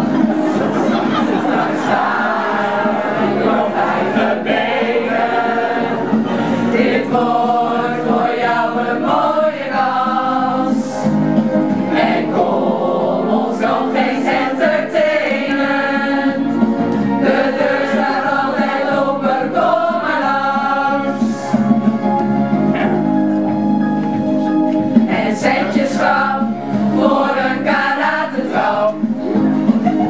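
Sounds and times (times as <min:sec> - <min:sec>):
group of women singing: 0:00.0 - 0:11.1, 0:11.9 - 0:21.6, 0:25.0 - 0:29.2.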